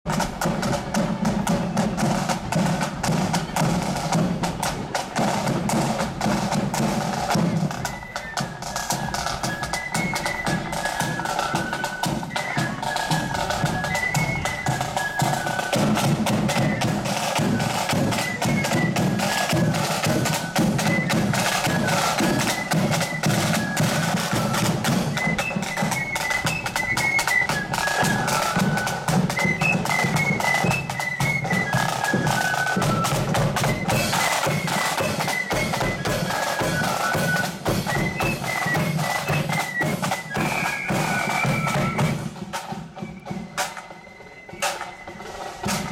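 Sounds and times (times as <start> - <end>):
flutes playing melody: 0.1 - 45.9
side drums and bass drum march beat: 0.1 - 45.9.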